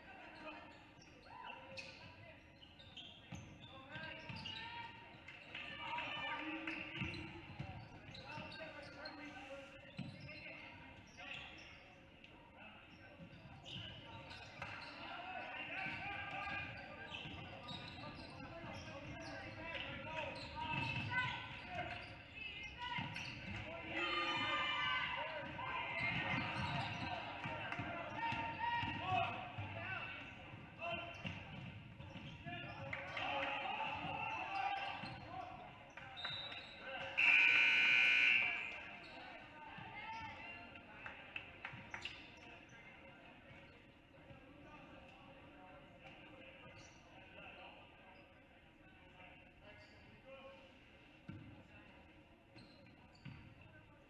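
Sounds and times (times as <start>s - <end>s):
voices echoing in gym: 0.0s - 54.0s
referee's whistle blast: 37.2s - 38.8s.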